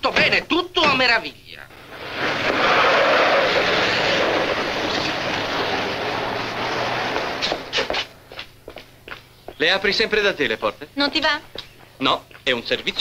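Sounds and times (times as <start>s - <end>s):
car engine pulling away: 1.7s - 8.2s
road noise: 1.7s - 13.0s.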